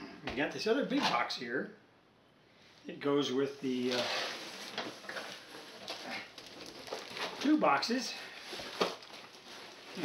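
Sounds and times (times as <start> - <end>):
cardboard box scraping and rustling: 3.8 - 6.0.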